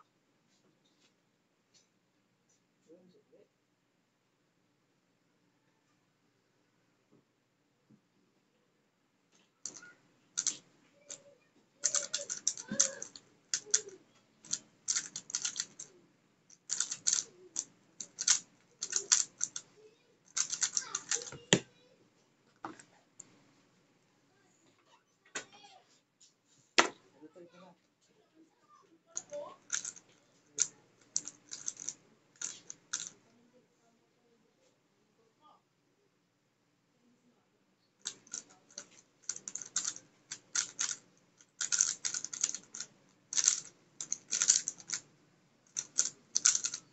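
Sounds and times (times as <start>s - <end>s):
puzzle cube plastic clicking: 9.7s - 11.2s, 11.8s - 19.7s, 20.3s - 21.7s, 29.2s - 33.2s, 38.0s - 45.1s, 45.7s - 46.9s.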